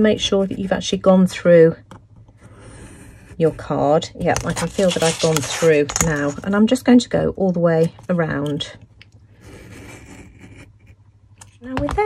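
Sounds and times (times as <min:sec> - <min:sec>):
knife scraping through card: 0:04.4 - 0:06.4.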